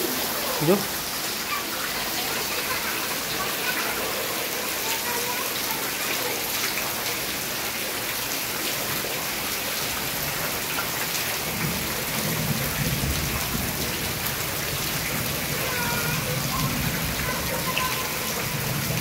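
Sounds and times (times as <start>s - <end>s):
heavy rain on water and leaves: 0.0s - 19.0s.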